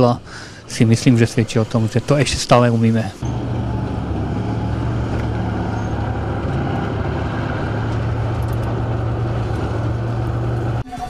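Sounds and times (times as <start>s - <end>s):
heavy engines humming: 0.0s - 10.8s.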